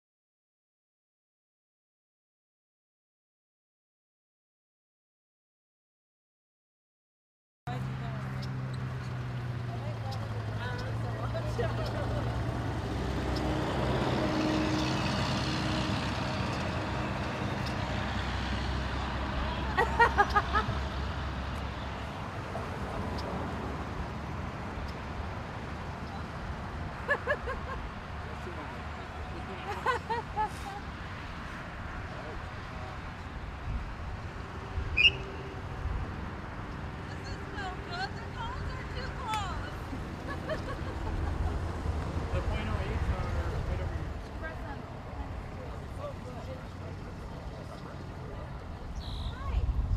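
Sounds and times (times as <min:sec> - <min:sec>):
traffic noise: 0:07.7 - 0:49.9
truck passing: 0:07.7 - 0:49.9
wind: 0:07.7 - 0:49.9
short high-pitched chirp: 0:35.0 - 0:35.4.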